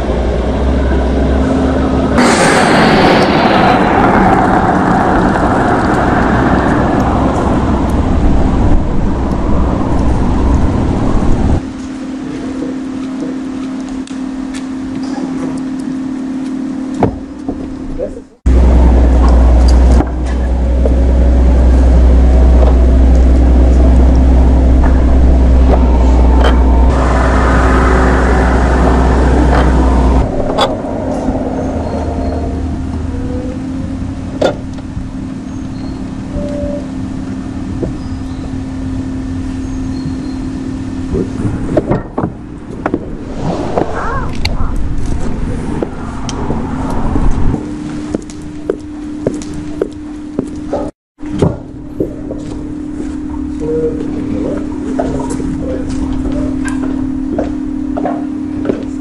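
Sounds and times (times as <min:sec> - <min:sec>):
car driving away: 0:00.0 - 0:11.7, 0:18.5 - 0:36.4, 0:37.0 - 0:49.8
loud deep rumble: 0:00.0 - 0:50.8
steady low hum: 0:00.0 - 0:59.0.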